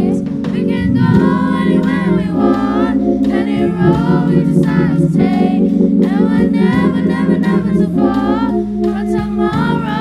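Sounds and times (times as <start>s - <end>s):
instrumental accompaniment chords: 0.0s - 10.0s
youth choir singing gospel: 0.0s - 10.0s.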